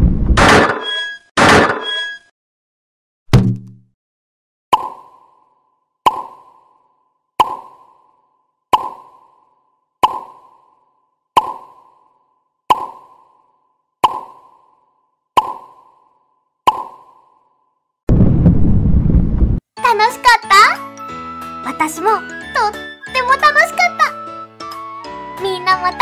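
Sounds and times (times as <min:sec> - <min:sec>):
cartoon pop sound effect: 0:03.3 - 0:03.8, 0:07.4 - 0:07.8, 0:11.4 - 0:11.8, 0:14.0 - 0:14.4.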